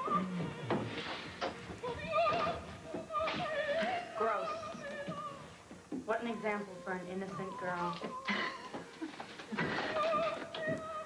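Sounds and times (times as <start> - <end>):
opera singing with vibrato: 1.8 - 8.1, 9.7 - 11.0.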